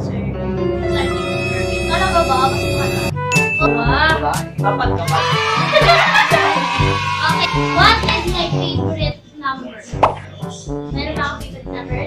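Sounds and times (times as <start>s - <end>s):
background music with bass line: 0.0s - 9.2s, 10.0s - 12.0s
pop sound effect: 10.0s - 10.3s.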